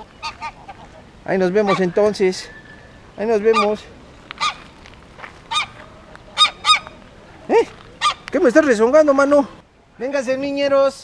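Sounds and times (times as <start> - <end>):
goose honking: 0.0 - 2.3, 3.2 - 4.8, 5.4 - 7.0, 8.0 - 8.6.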